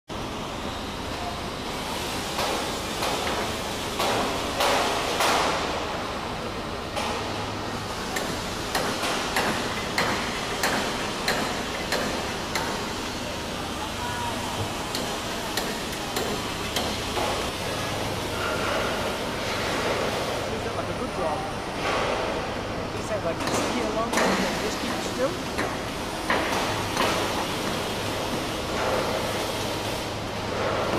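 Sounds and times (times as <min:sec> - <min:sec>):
steady hall background noise: 0:00.1 - 0:30.9.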